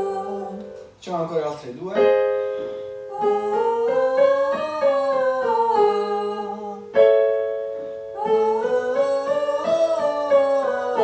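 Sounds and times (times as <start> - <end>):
man and woman singing scale: 0.0 - 7.4, 8.1 - 11.0
electronic piano chord: 1.8 - 11.0.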